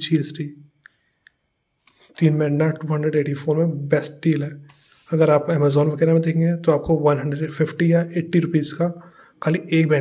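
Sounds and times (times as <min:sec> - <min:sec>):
man speaking: 0:00.0 - 0:00.7, 0:02.1 - 0:10.0.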